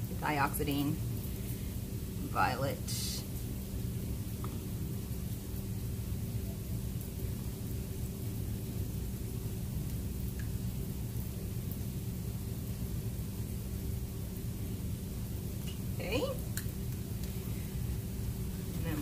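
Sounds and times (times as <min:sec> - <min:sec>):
heavy rain: 0:00.0 - 0:19.0.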